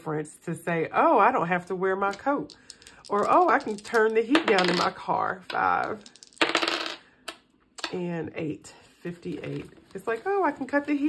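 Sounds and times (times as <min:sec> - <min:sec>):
dice clattering on a tabletop: 0:02.0 - 0:07.4.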